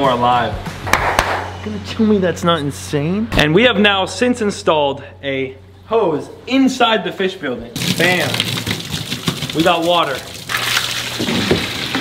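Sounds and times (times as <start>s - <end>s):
water pouring from hose: 7.8s - 12.0s.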